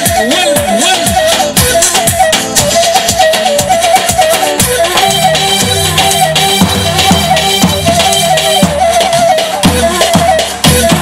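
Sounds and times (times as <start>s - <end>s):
bass drums beating dance rhythm: 0.0s - 11.0s
flute melody trilling: 0.0s - 11.0s.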